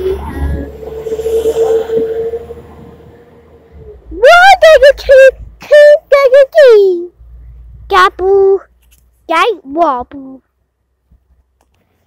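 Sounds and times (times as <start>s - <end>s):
train rumble: 0.0s - 6.0s.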